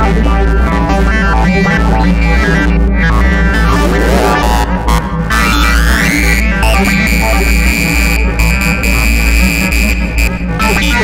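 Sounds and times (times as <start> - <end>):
loud live electronic music: 1.3 - 8.4.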